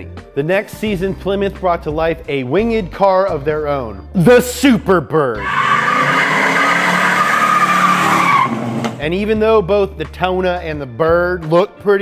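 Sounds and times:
tyres squealing on pavement: 5.4s - 9.0s.

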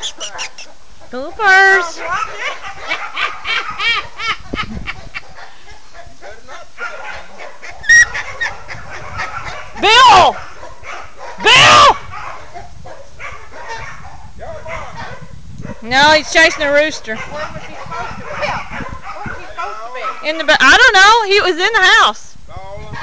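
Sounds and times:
dogs barking and yipping: 0.0s - 15.8s, 16.4s - 20.8s.

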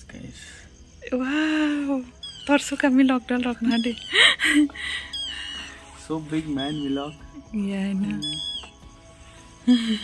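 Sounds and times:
high breathy laughter: 4.1s - 5.7s, 9.7s - 10.0s.

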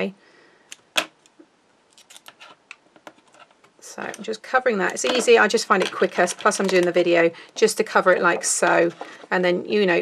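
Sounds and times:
tape and scissors clicking and rustling: 1.9s - 3.5s.

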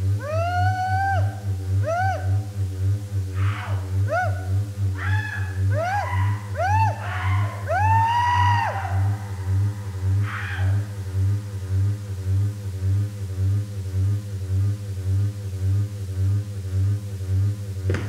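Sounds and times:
throbbing low drone: 0.0s - 18.0s
pitched electronic shrieks: 3.3s - 11.2s.

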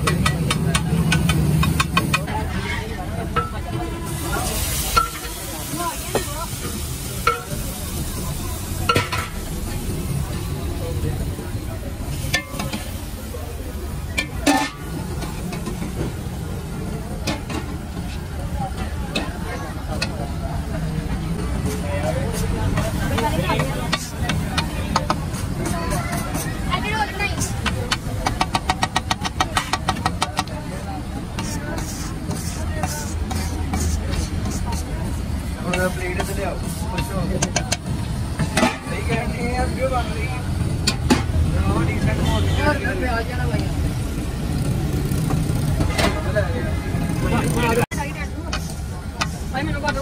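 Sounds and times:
metal spatula clacking on griddle: 0.0s - 2.4s, 12.2s - 13.0s, 27.4s - 30.6s
low rumble of traffic: 0.0s - 50.0s
egg sizzling on a griddle: 31.3s - 37.1s.

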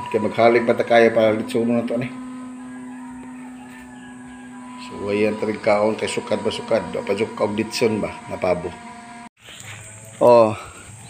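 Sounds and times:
faint higher tones: 0.0s - 10.9s
steady low hum: 0.0s - 11.0s.

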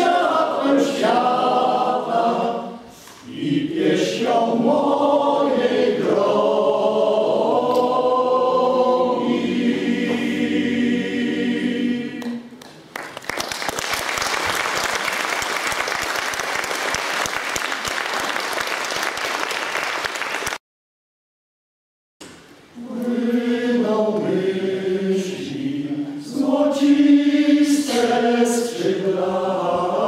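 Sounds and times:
men's choir singing a cappella: 0.0s - 12.6s, 22.8s - 30.0s
audience applause: 12.7s - 20.6s.

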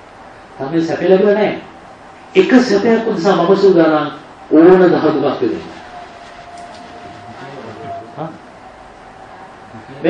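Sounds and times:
recording hiss: 0.0s - 10.0s
steady electrical whine: 0.0s - 10.0s.

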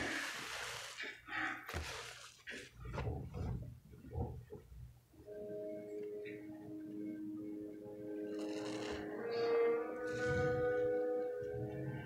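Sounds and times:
background music with held notes: 5.1s - 12.0s.

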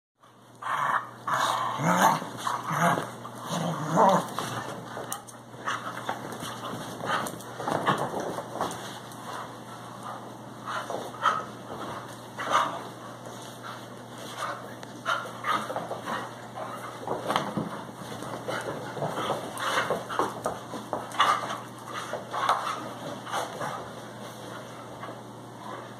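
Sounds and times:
dogs growling: 0.6s - 4.9s
dogs play-fighting vocalizing: 0.6s - 24.0s.

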